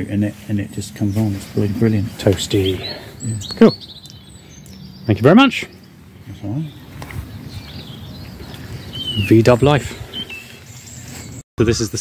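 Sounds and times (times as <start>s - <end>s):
faint bird chirps: 0.6s - 11.4s.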